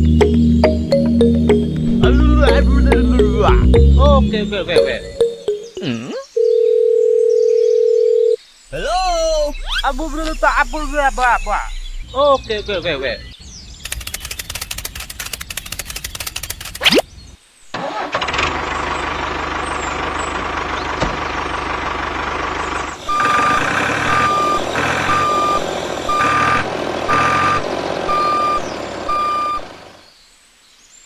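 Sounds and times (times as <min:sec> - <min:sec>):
fast rattling clicks: 0:13.8 - 0:16.8
tractor engine running: 0:13.8 - 0:16.8, 0:17.8 - 0:30.0
reversing alarm beeping: 0:23.0 - 0:29.7.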